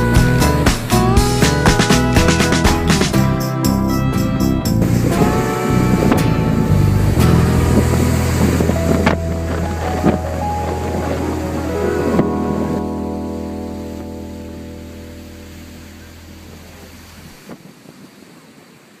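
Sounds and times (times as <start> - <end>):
deep bass: 0.0 - 17.4
held music chord: 0.0 - 17.4.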